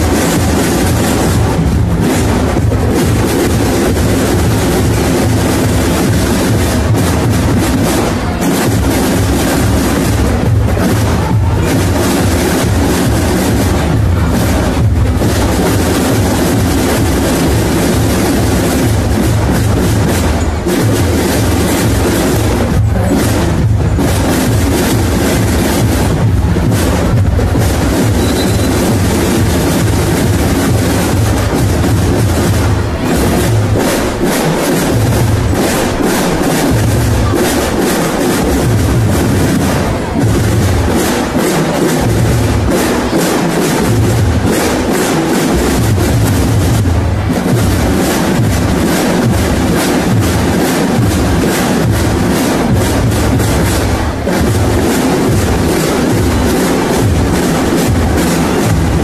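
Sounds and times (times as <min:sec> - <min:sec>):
bass drum pulsing: 0:00.0 - 0:37.8
drum and lyre band playing: 0:00.0 - 0:59.0
rapid snare strokes: 0:00.0 - 0:59.0.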